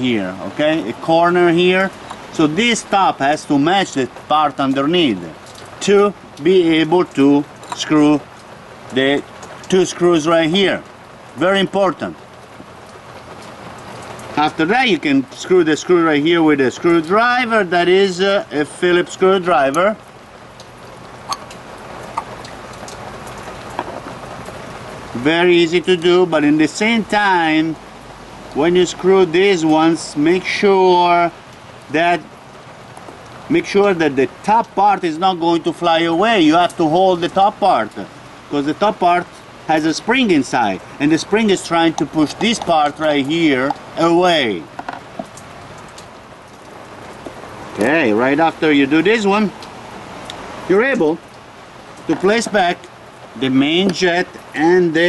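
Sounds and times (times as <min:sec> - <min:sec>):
steady background hiss: 0:00.0 - 0:55.0.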